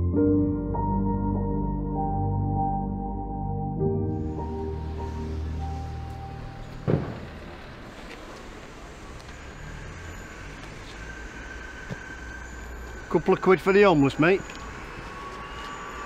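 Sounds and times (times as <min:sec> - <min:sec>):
road traffic: 0:03.8 - 0:16.0
loud thump: 0:06.8 - 0:07.7.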